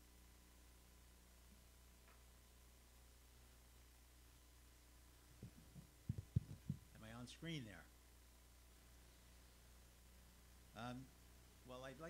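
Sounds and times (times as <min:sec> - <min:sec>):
dull low handling thumps: 0:05.4 - 0:07.0.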